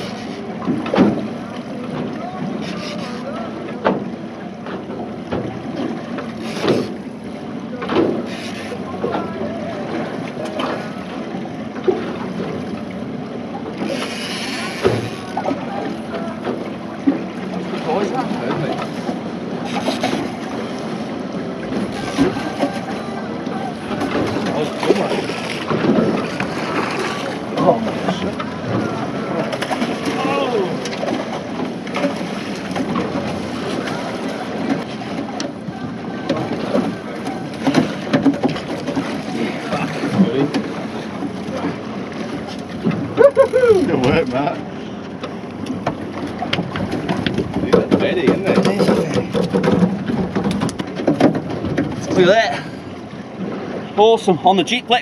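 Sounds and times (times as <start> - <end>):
outboard motor running: 0.0 - 55.0
water noise: 0.0 - 55.0.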